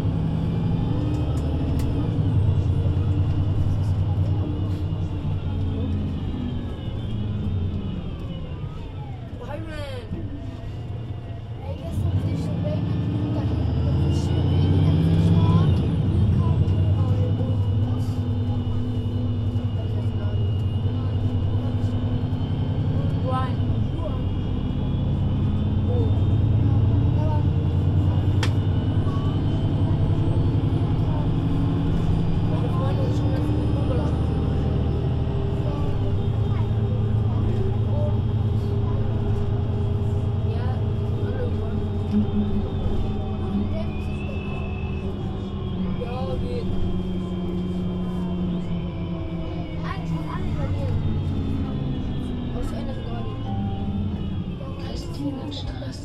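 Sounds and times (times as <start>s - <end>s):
bus diesel engine pulling away: 0.0s - 56.0s.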